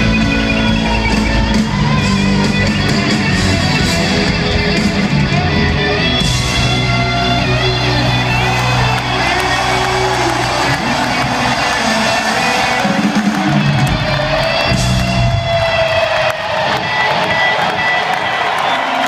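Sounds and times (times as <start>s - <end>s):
electric guitar: 0.0s - 18.8s
crowd cheering and whooping: 0.0s - 19.0s
rock band playing live: 0.0s - 19.0s.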